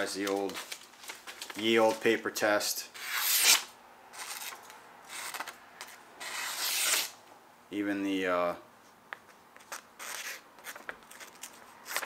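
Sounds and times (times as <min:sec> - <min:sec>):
knife slicing paper: 0:03.0 - 0:05.5, 0:06.2 - 0:07.1.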